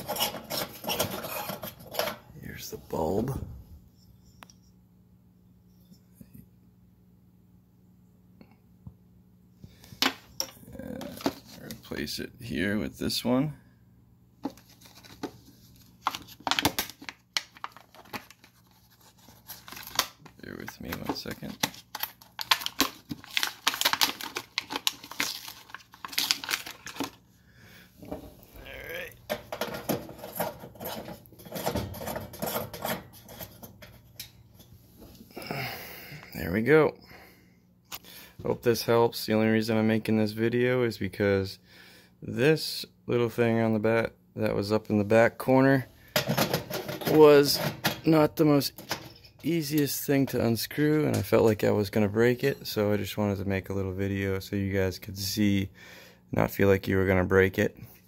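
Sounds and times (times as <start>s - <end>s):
faint low hum: 0.0s - 58.0s
plastic packaging rustling: 14.4s - 27.3s.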